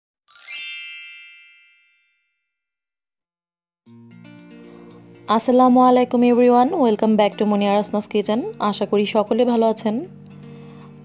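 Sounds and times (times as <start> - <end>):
shimmering chime ding: 0.3 - 2.5.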